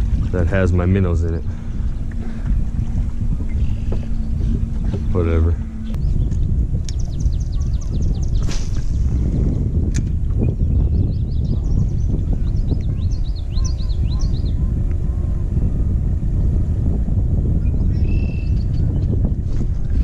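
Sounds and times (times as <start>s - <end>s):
wind buffeting microphone: 0.0s - 20.0s
high bird chirps: 1.5s - 8.6s, 10.4s - 14.6s.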